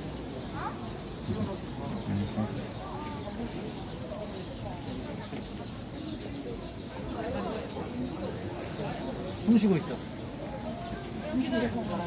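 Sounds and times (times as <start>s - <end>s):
faint wavering voices: 0.0s - 12.0s.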